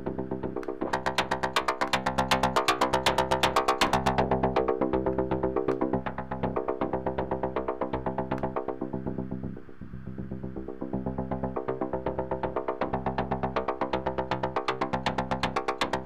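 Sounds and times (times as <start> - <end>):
sequenced synthesizer notes: 0.0 - 16.0.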